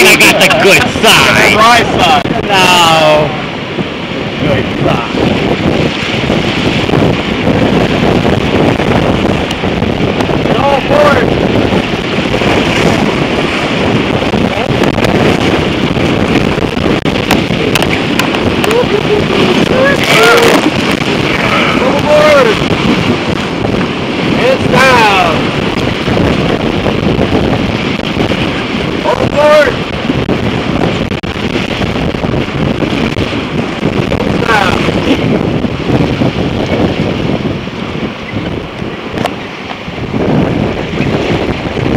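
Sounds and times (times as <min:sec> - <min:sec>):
whitewater rapids rushing: 0:00.0 - 0:41.9
wind buffeting microphone: 0:00.0 - 0:41.9.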